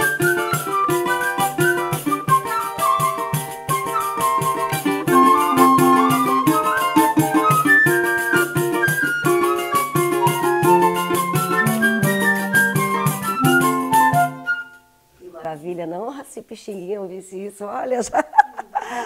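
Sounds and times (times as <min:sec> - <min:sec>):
tambourine rhythm: 0:00.0 - 0:14.4
strummed small guitar: 0:00.0 - 0:14.8
flute and clarinet melody: 0:00.0 - 0:15.1.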